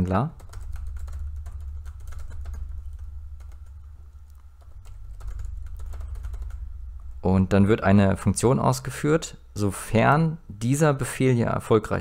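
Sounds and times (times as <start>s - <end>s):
steady low hum: 0.0s - 12.0s
computer keyboard typing: 0.3s - 6.7s.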